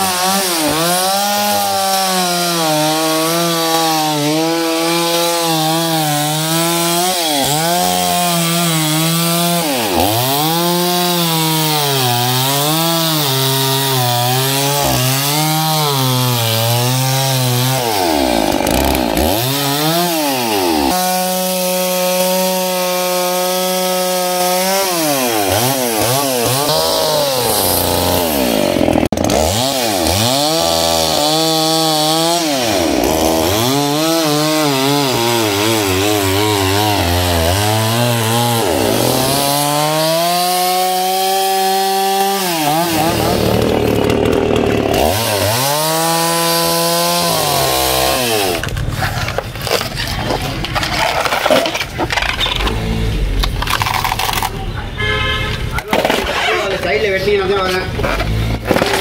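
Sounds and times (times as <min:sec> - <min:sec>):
chainsaw cutting: 0:00.0 - 0:54.7, 0:55.8 - 0:59.0.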